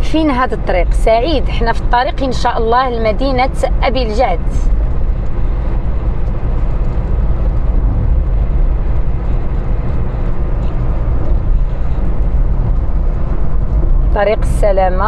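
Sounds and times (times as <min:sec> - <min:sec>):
car engine and tyre noise: 0:00.0 - 0:15.0.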